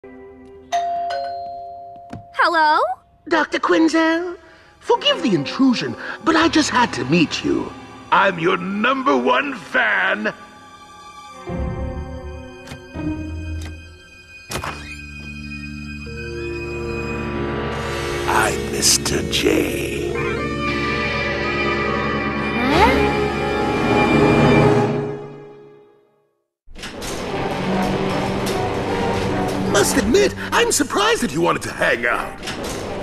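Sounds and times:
two-tone doorbell chime: 0:00.7 - 0:02.4
quiet background music: 0:03.2 - 0:17.5.

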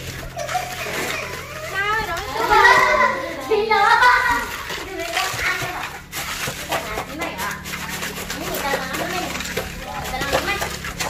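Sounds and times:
child's voice: 0:00.6 - 0:06.0, 0:08.3 - 0:10.9.

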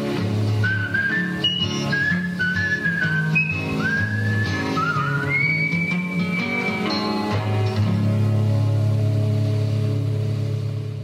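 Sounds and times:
acoustic guitar: 0:00.0 - 0:11.0
bass: 0:00.0 - 0:11.0
person whistling a melody: 0:00.6 - 0:07.0.

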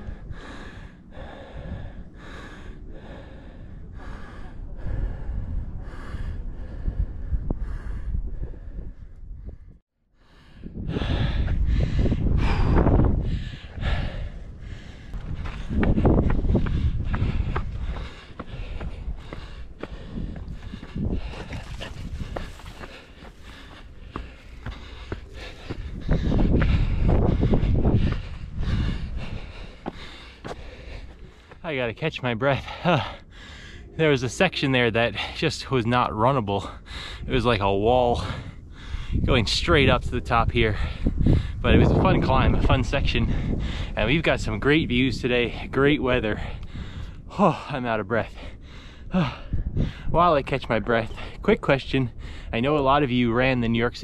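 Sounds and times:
heavy labouring breathing: 0:00.0 - 0:31.8, 0:32.4 - 0:35.8, 0:36.5 - 0:37.4, 0:38.1 - 0:39.3, 0:40.6 - 0:44.2, 0:45.4 - 0:50.1, 0:52.1 - 0:52.6
footsteps on rocky ground: 0:14.5 - 0:33.1.

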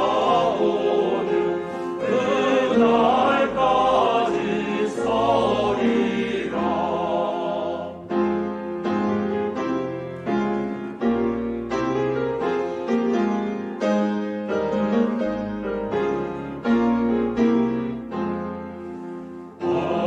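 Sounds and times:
piano chords: 0:00.0 - 0:20.0.

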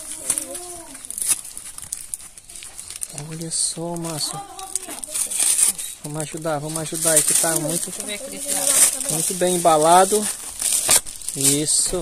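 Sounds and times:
plastic wrapping crinkling: 0:00.0 - 0:12.0.

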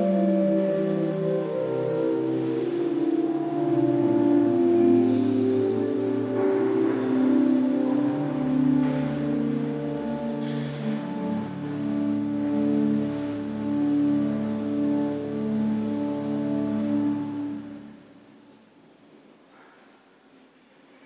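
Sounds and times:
pipe organ chords: 0:00.0 - 0:18.3.

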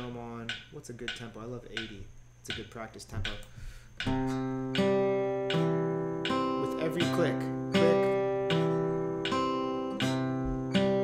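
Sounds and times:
fingerpicked acoustic guitar: 0:04.0 - 0:11.0.

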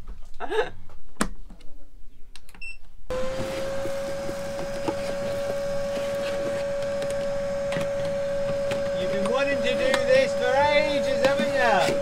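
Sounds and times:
vacuum cleaner running: 0:03.1 - 0:12.0.

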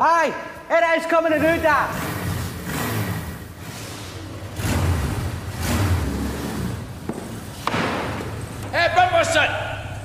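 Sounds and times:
motorbike engine revving: 0:01.4 - 0:09.0.

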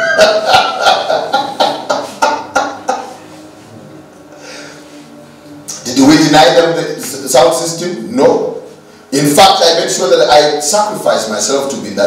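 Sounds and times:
man laughing heartily: 0:00.0 - 0:03.4.

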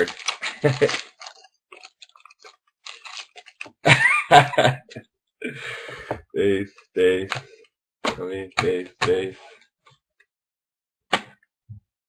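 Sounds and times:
man's voice: 0:00.0 - 0:01.0, 0:04.3 - 0:07.4, 0:08.1 - 0:09.5
trading cards clicking: 0:00.0 - 0:03.8, 0:08.1 - 0:09.3.

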